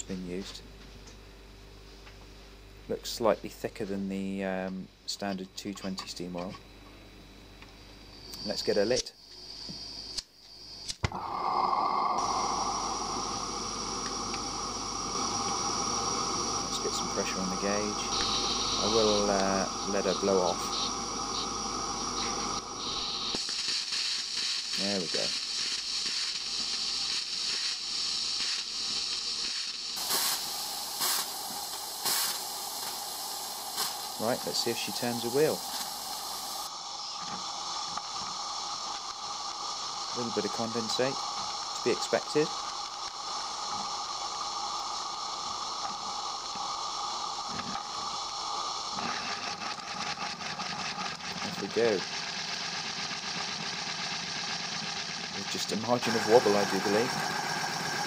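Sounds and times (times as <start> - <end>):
steam hissing from safety valve: 10.9 - 58.0.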